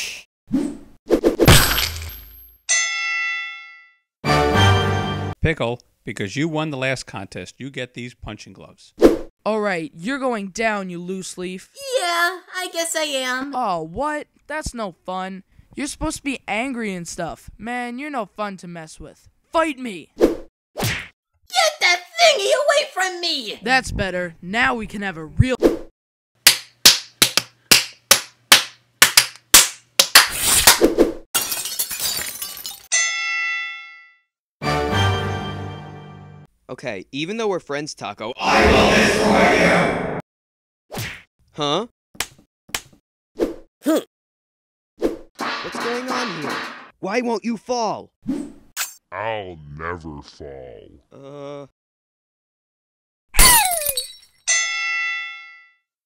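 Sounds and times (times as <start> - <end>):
cartoon smacks and hits: 45.4 - 46.9.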